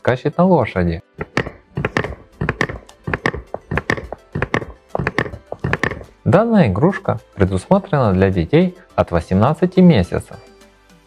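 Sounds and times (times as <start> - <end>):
background music: 0.0 - 11.0
electronic galloping hoof clip-clop: 1.2 - 6.2.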